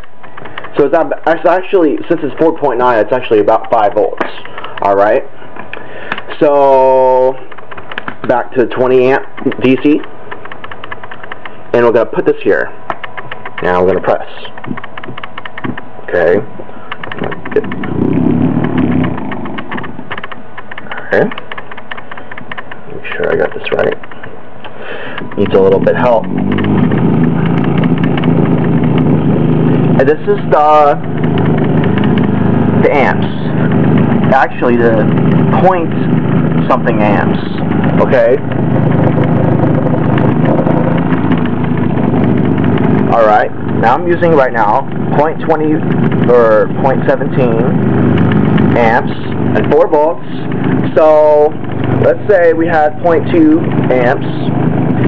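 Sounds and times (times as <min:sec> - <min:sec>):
rapid clicking of motor contacts: 0:00.0 - 0:55.0
rough whirring: 0:00.0 - 0:55.0
small electric motor running: 0:17.0 - 0:20.3, 0:25.2 - 0:43.1.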